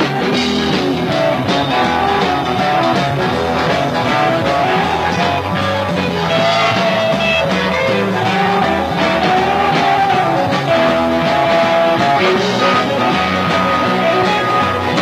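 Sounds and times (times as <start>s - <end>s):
electric guitar lead: 0.0s - 15.0s
rock band playing: 0.0s - 15.0s.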